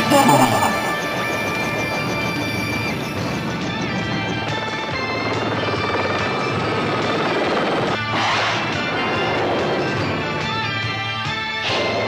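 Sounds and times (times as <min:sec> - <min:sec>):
background music: 0:00.0 - 0:01.7.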